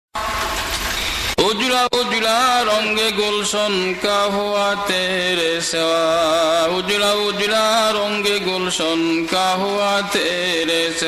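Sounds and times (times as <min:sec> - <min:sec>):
man singing: 0:01.4 - 0:11.0.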